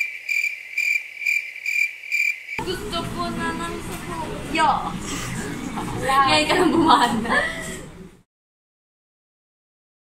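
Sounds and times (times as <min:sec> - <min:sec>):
crickets chirping: 0:00.0 - 0:02.6.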